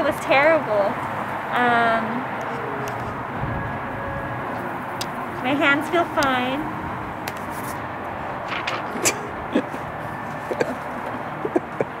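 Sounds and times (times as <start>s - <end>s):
outdoor background noise: 0.0s - 12.0s
paper rustling: 7.3s - 7.8s, 8.4s - 9.3s.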